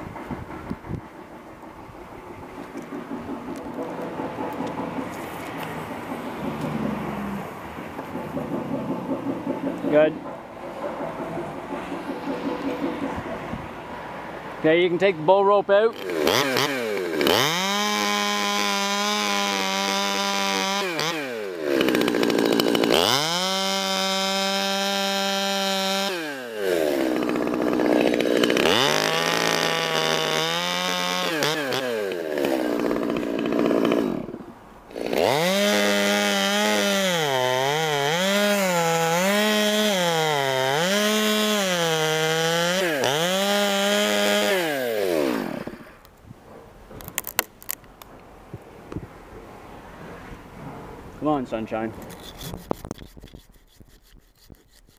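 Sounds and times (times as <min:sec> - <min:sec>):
chainsaw revving and idling: 0:02.3 - 0:13.1, 0:15.9 - 0:46.1.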